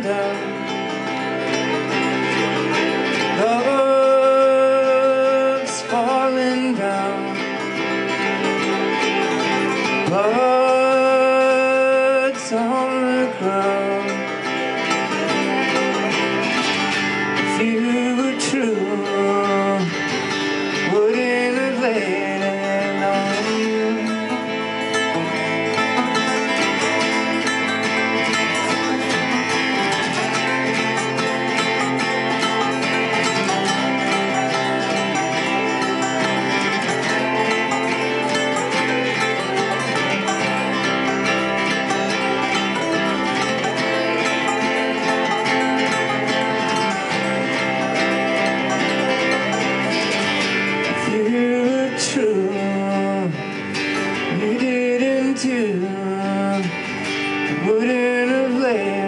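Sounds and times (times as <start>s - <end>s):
live band playing country-folk: 0.0s - 59.0s
pitch-bending notes: 21.3s - 52.9s.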